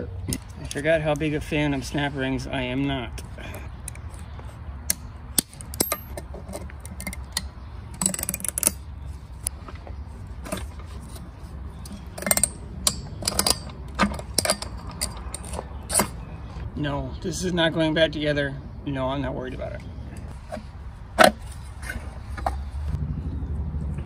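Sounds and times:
pliers clicking on metal ring: 0:04.9 - 0:06.2, 0:11.8 - 0:16.1
steady low rumble: 0:20.0 - 0:24.0.

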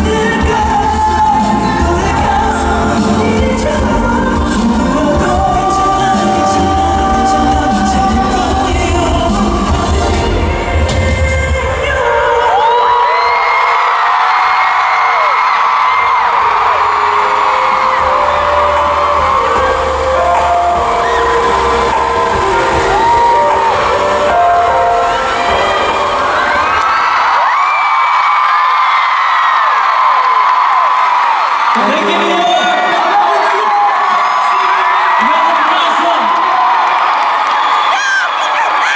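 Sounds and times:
pop music: 0:00.0 - 0:14.4, 0:15.4 - 0:27.7
crowd screaming and cheering: 0:00.0 - 0:38.9.

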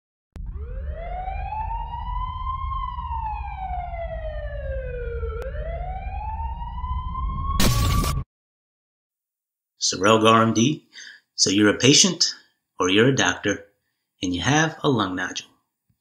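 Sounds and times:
siren wailing: 0:00.4 - 0:08.2.

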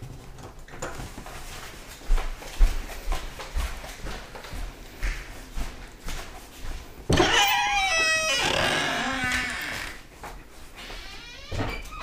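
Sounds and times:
door hinges squeaking: 0:07.1 - 0:10.1, 0:10.8 - 0:12.0.

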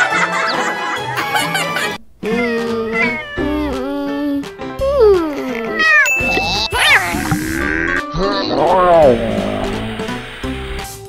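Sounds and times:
background music: 0:00.0 - 0:11.0
cat hissing: 0:02.2 - 0:03.8, 0:07.6 - 0:10.2
cat meowing: 0:02.3 - 0:04.1, 0:05.5 - 0:09.8.

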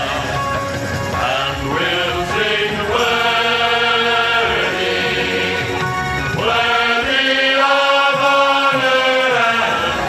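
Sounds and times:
male group singing gospel: 0:01.1 - 0:10.0.

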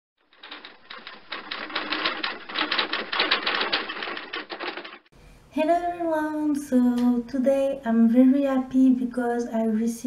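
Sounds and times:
typewriter key clatter: 0:00.2 - 0:05.1.

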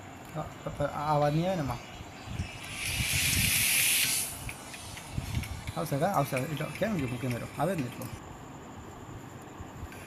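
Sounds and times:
high even hiss: 0:00.4 - 0:08.2.

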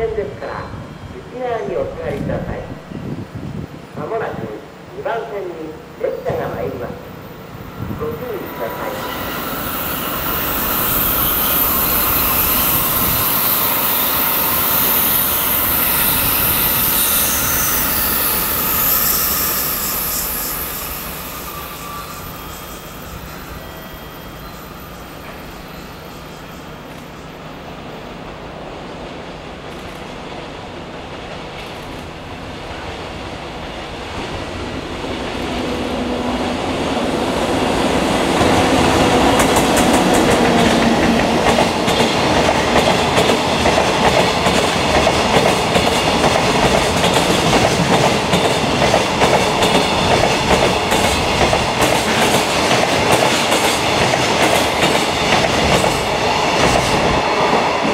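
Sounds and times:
freight train rolling past: 0:00.0 - 0:57.9.

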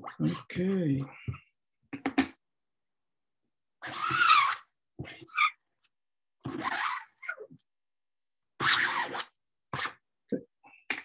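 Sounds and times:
squeegee scraping ink on screen: 0:06.4 - 0:07.4, 0:08.6 - 0:10.0.

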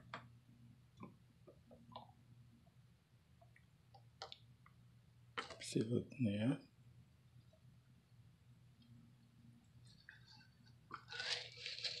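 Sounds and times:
pellets rattling from plastic bottle: 0:11.0 - 0:12.0.

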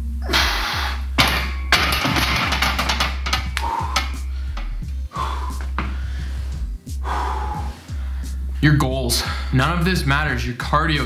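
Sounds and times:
background music: 0:00.0 - 0:11.0
man breathing hard and gasping: 0:00.2 - 0:01.1, 0:03.5 - 0:08.6.

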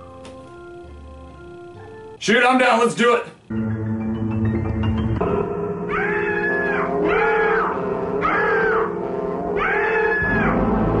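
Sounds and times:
sustained musical drone: 0:00.0 - 0:02.2, 0:03.5 - 0:11.0
woman screaming: 0:05.9 - 0:09.0, 0:09.6 - 0:10.6.

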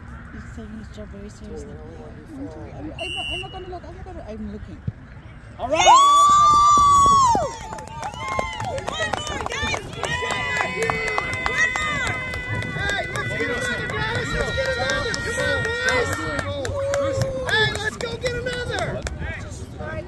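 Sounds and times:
crowd shouting and cheering: 0:05.6 - 0:20.0.

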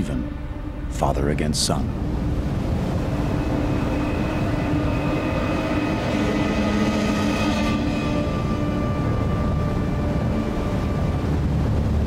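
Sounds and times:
rushing floodwater roar: 0:00.0 - 0:12.0.

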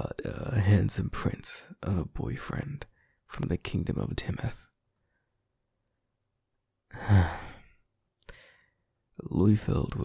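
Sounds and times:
man sighing: 0:06.9 - 0:08.6.

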